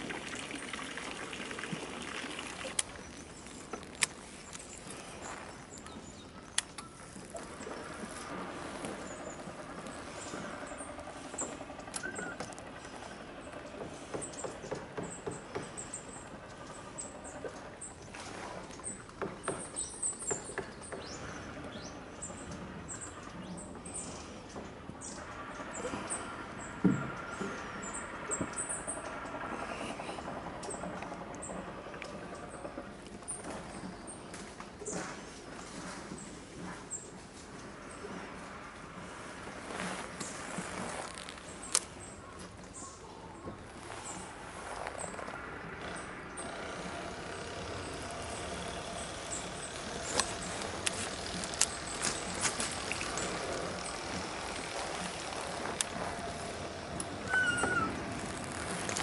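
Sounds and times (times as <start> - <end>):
faint steady hum: 0.0 - 59.0.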